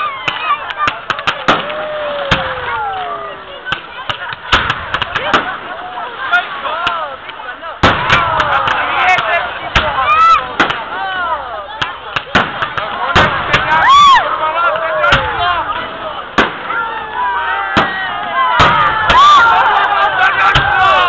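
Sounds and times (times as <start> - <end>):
firework bangs and crackles: 0.0 - 21.0.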